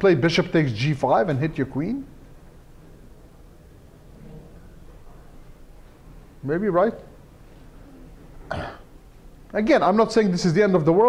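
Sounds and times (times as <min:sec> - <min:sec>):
person coughing: 0:08.5 - 0:08.9.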